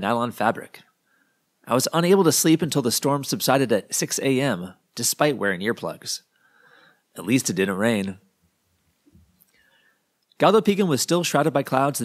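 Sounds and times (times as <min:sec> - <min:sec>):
man reading aloud: 0:00.0 - 0:00.9, 0:01.6 - 0:06.3, 0:07.1 - 0:08.3, 0:10.4 - 0:12.0
faint breath: 0:01.0 - 0:01.5, 0:06.3 - 0:07.1, 0:09.5 - 0:10.1.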